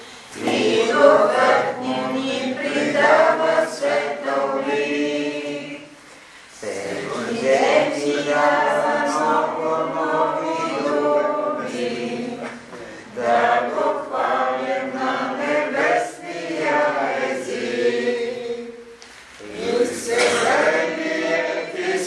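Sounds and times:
group singing a hymn: 0:00.0 - 0:22.0.

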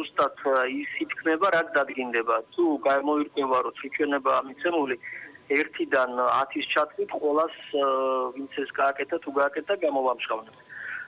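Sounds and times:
man talking over telephone: 0:00.0 - 0:10.6.

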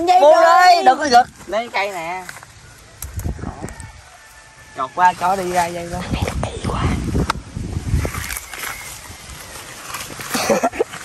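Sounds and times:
wind and handling rumble: 0:00.0 - 0:11.0.

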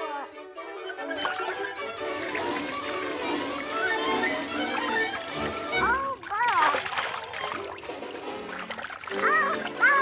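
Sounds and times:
music: 0:00.0 - 0:10.0
water splash: 0:01.2 - 0:10.0.

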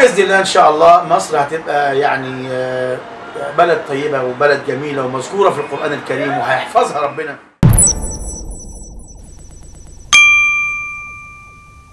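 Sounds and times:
fast electronic ticking: 0:07.6 - 0:10.6
bright ringing ding: 0:07.6 - 0:11.9.

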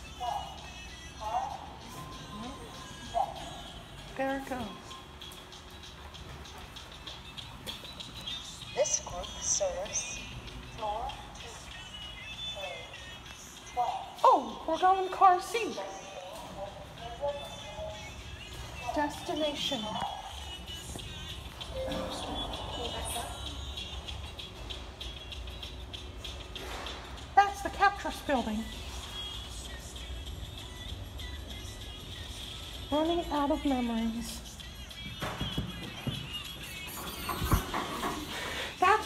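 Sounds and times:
faint background music: 0:00.0 - 0:39.0
elevator low rumble: 0:21.3 - 0:24.5
footsteps on hard floor: 0:35.1 - 0:38.4.

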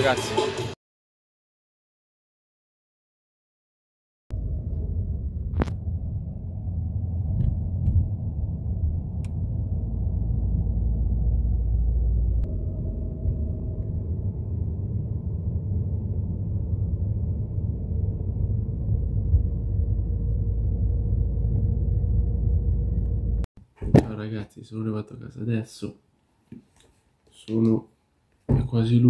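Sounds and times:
car road and engine rumble: 0:04.3 - 0:23.5.

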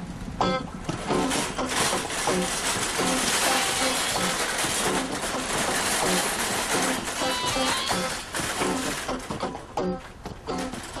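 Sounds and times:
wire shopping cart rattling: 0:00.8 - 0:11.0.

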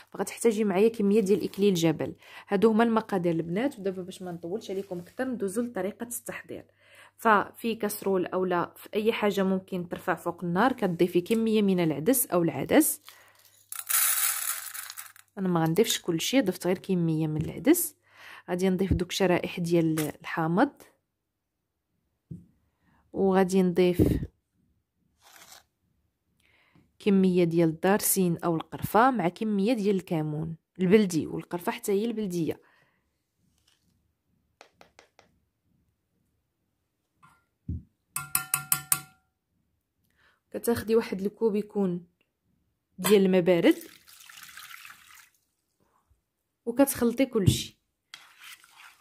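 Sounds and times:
lentils pouring into a pan: 0:13.4 - 0:15.2
plastic spoon scraping glass jar: 0:25.2 - 0:25.7, 0:48.1 - 0:49.0
spoon tapping ringing dish: 0:38.2 - 0:39.3.

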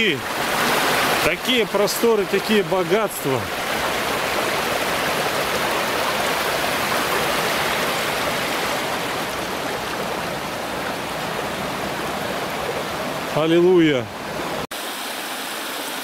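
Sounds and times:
water rushing through spillway: 0:00.0 - 0:16.0.

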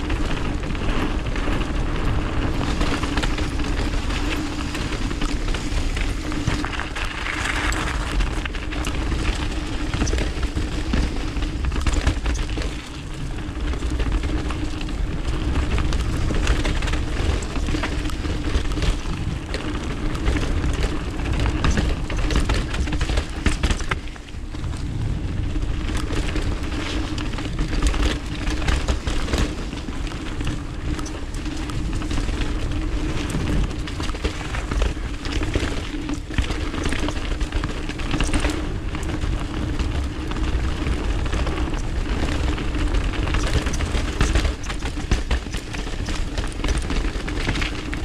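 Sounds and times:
bike rattles and stone clicks: 0:00.0 - 0:48.0
bike tyre rumble on gravel: 0:00.0 - 0:48.0
steady low hum: 0:00.0 - 0:48.0
wind noise on microphone: 0:00.0 - 0:48.0.

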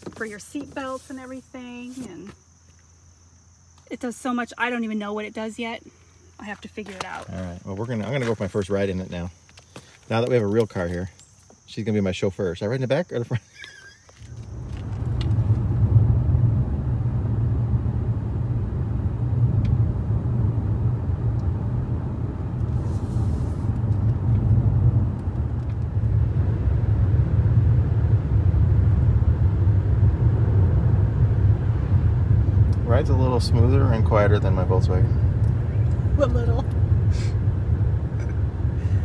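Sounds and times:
road and tyre noise in car cabin: 0:00.0 - 0:39.0.

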